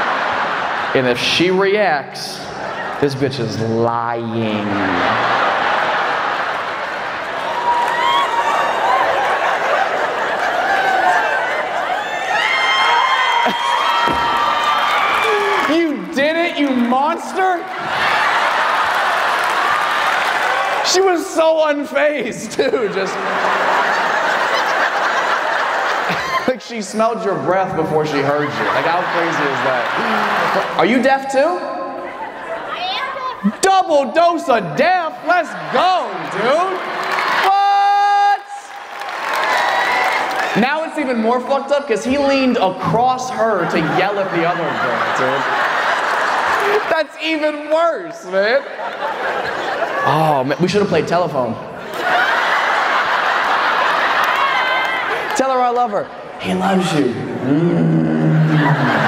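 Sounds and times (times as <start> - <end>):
audience cheering and whooping: 4.2 - 21.2, 23.0 - 26.6, 27.9 - 31.0, 34.8 - 40.9, 43.4 - 47.0, 51.8 - 55.4, 57.8 - 59.0
man shouting: 37.4 - 38.6.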